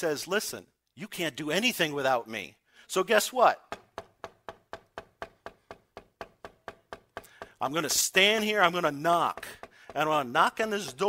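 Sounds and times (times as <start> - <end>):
rapid knocking on hard surface: 3.7 - 11.0.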